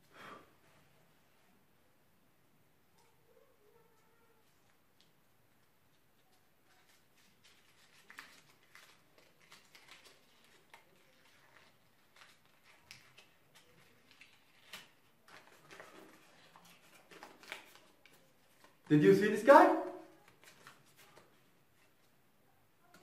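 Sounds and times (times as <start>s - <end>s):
paper crinkling and rustling: 4.4s - 22.2s
short paper crackles: 6.6s - 18.9s.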